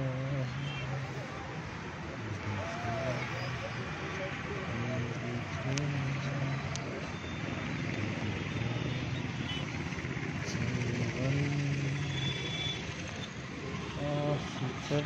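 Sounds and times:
road traffic rushing: 0.0s - 15.0s.

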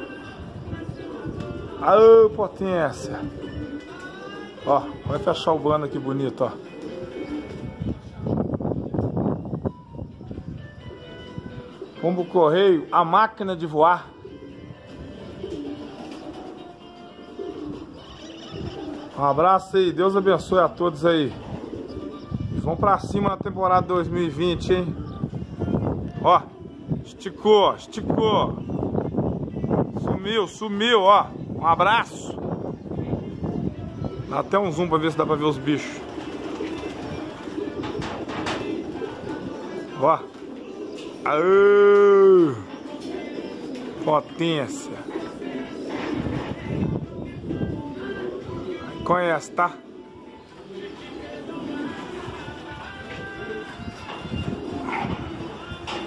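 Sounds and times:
pigeons cooing: 0.0s - 56.0s.

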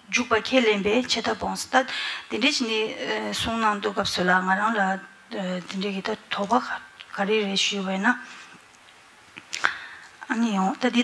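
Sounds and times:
woman speaking over microphone: 0.0s - 8.3s, 10.2s - 11.0s.

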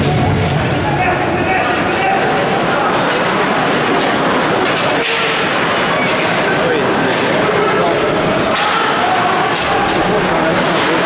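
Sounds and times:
hockey arena crowd noise: 0.0s - 11.0s.

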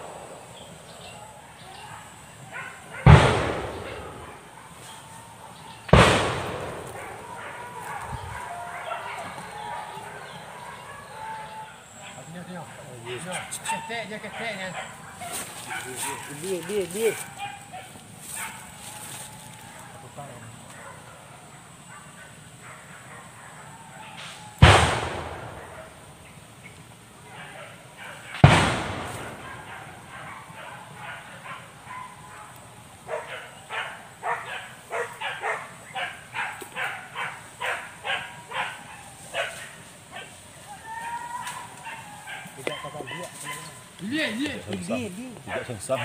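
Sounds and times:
dogs barking: 0.0s - 46.0s
loud bangs: 2.9s - 5.0s, 5.8s - 8.5s, 24.2s - 26.3s, 28.3s - 30.2s.

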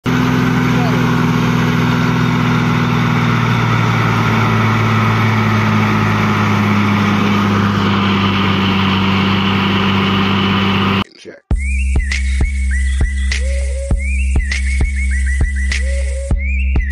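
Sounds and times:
heavy diesel engine under load: 0.0s - 11.0s
music: 11.4s - 16.9s.

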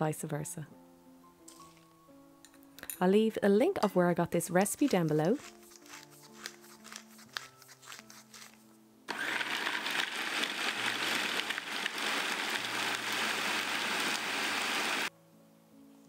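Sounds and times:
soft background music: 0.0s - 9.1s, 15.1s - 16.0s
food processor chopping: 9.1s - 15.1s.

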